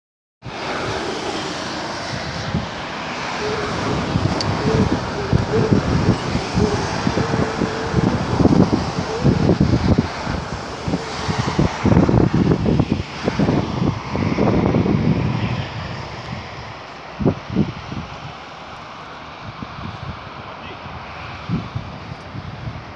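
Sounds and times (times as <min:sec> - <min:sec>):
car road noise: 0:00.4 - 0:22.9
wind buffeting microphone: 0:00.4 - 0:22.9.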